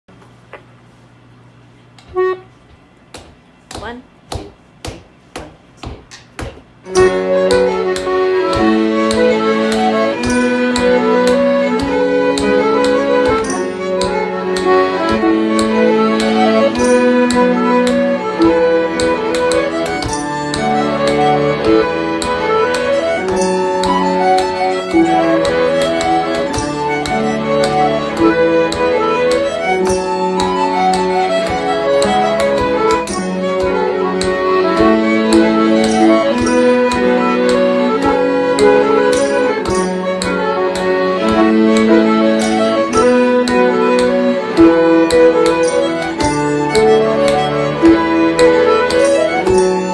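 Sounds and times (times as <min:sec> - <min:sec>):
accordion melody: 0:02.0 - 0:03.0, 0:06.8 - 0:49.9
piano accordion: 0:02.0 - 0:03.0, 0:06.8 - 0:49.9
fiddle melody: 0:02.1 - 0:02.6, 0:06.9 - 0:49.9
bodhran beat: 0:06.9 - 0:49.9
cello low notes: 0:06.9 - 0:49.9
harp: 0:06.9 - 0:49.9.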